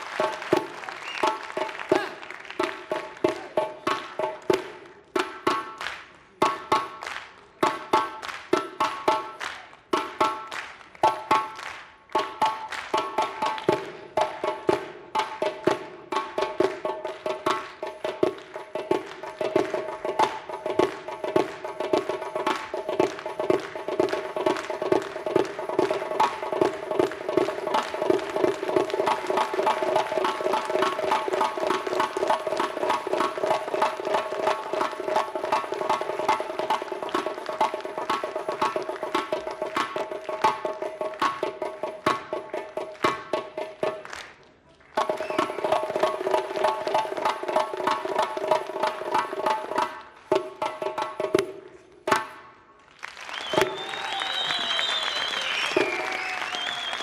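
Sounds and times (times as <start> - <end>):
frame drum played by hand: 12.2 - 44.0, 45.0 - 52.4.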